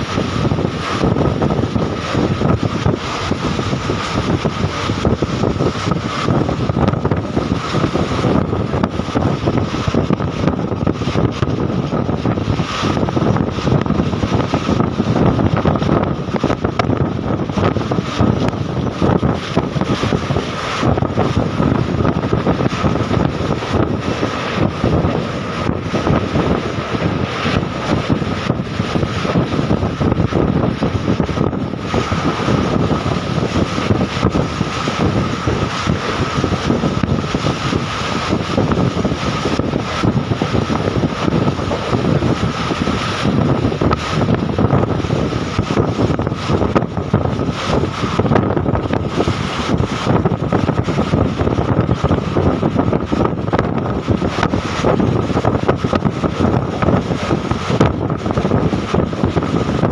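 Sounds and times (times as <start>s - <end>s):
thin steady whine: 0.0s - 59.9s
train rumbling: 0.0s - 59.9s
wind buffeting microphone: 0.0s - 59.9s.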